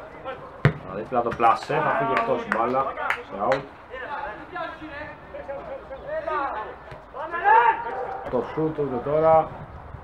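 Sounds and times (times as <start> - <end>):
men talking and calling: 0.0 - 9.6
football strikes: 0.6 - 1.6.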